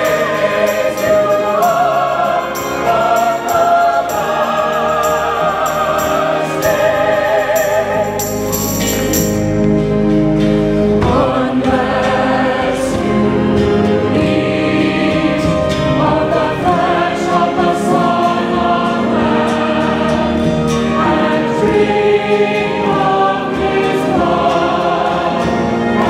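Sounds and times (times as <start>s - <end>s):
mixed choir singing a hymn: 0.0s - 9.5s, 10.8s - 26.0s
instrumental accompaniment: 0.0s - 26.0s.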